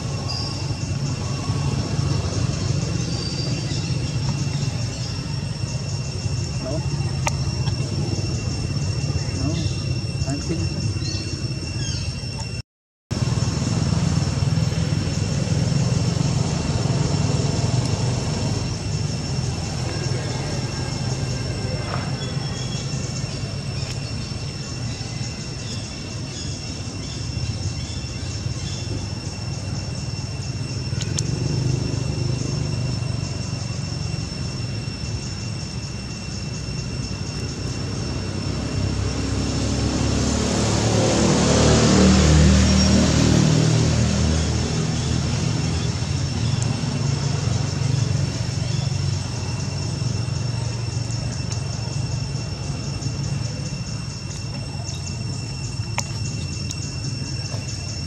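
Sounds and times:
vehicle passing by: 0.0 - 11.2, 13.2 - 23.0, 30.6 - 34.6, 37.8 - 51.2.

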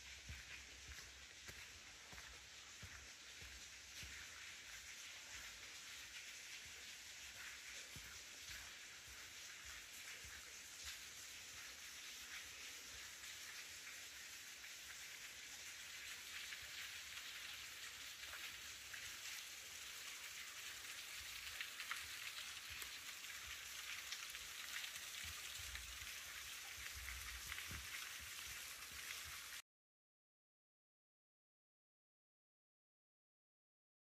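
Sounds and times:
small waterfall splashing: 0.0 - 29.6.

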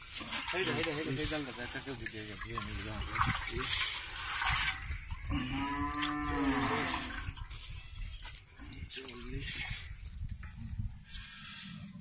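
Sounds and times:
cow mooing: 5.3 - 7.3.

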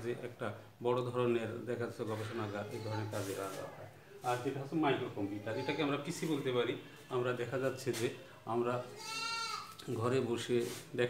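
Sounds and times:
man speaking: 0.0 - 9.0, 9.8 - 11.0.

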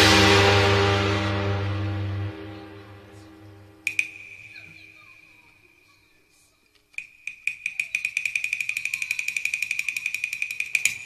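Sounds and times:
high-pitched percussion strikes: 3.8 - 5.8, 7.0 - 11.0
steady high ringing tone: 3.8 - 6.0, 7.0 - 11.0.

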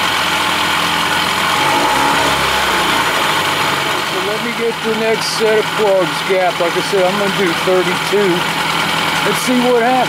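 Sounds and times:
outboard motor idling: 0.0 - 10.0.

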